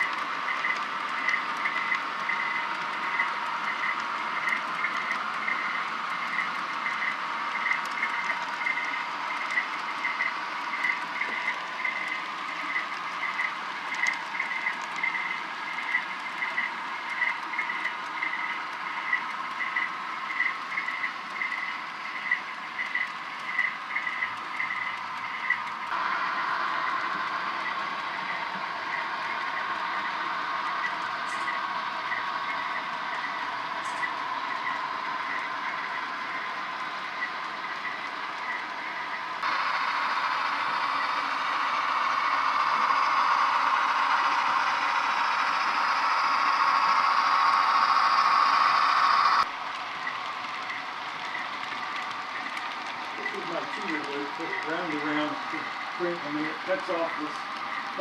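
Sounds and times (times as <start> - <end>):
model train rolling on track: 0.0 - 58.0.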